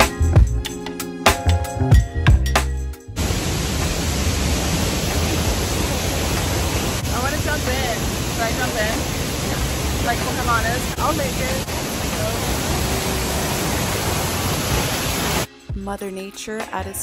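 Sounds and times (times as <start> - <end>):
music: 0.0 - 3.2, 15.5 - 17.0
waterfall rushing: 3.2 - 15.5
people talking: 7.0 - 13.8.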